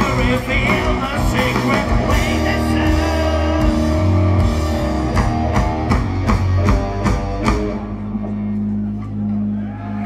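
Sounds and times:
rock band accented hits: 0.0s - 8.4s
electric guitars ringing: 0.0s - 10.0s.

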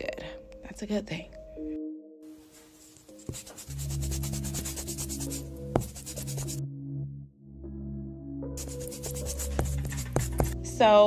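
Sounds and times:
background music with low notes: 0.0s - 11.0s
scratchy brush strokes: 2.5s - 6.6s, 8.6s - 10.6s.

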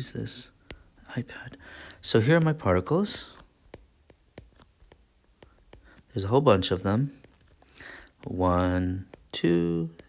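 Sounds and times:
stylus tapping on glass screen: 0.6s - 1.2s, 2.3s - 8.4s, 9.0s - 10.0s.

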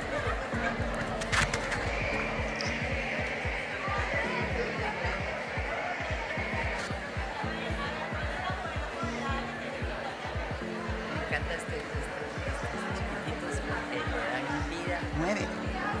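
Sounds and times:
music with thumping bass beat: 0.0s - 13.2s
crowd talking: 0.0s - 16.0s.

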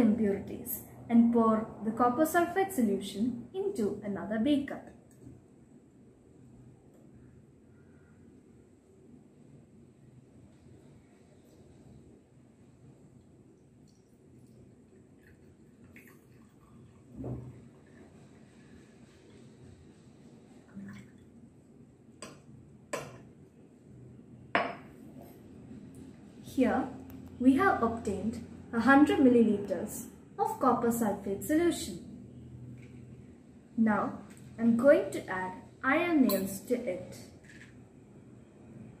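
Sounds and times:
liquid pouring between beakers: 13.2s - 19.6s
glass beakers clinking: 36.2s - 36.7s.

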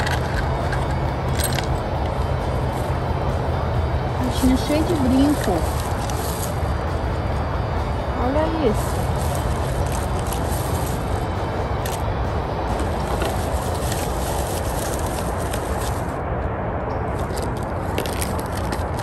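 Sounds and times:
small objects clicking and rustling: 0.0s - 2.2s, 11.8s - 12.0s, 12.7s - 16.1s, 17.1s - 19.0s
rushing outdoor noise: 0.0s - 19.0s.

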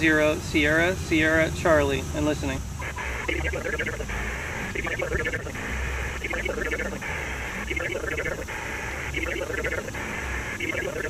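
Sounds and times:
faint garbled radio voices: 0.0s - 11.0s
radio band hiss: 0.0s - 11.0s.

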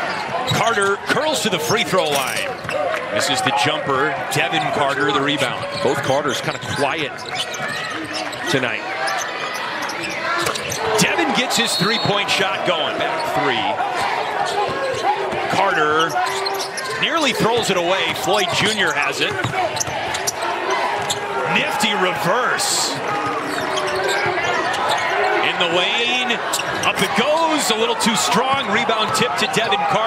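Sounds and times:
voices: 3.1s - 30.0s
sneaker squeaks on court: 5.0s - 10.9s, 16.0s - 17.7s, 18.4s - 21.3s, 23.3s - 25.3s
crowd murmur: 6.8s - 30.0s
basketball bouncing on hardwood: 19.3s - 20.0s.

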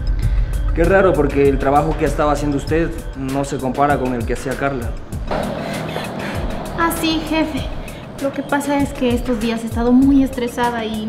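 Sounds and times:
murky drone: 4.1s - 11.0s
fast ticking beat: 5.2s - 11.0s.

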